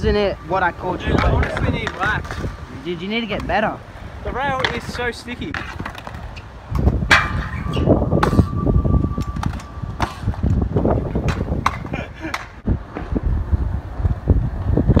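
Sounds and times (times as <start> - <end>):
wheels rolling over concrete: 0.8 - 8.5.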